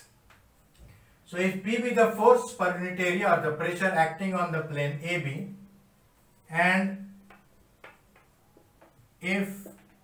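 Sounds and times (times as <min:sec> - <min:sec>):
marker pen on whiteboard: 0:06.5 - 0:10.0.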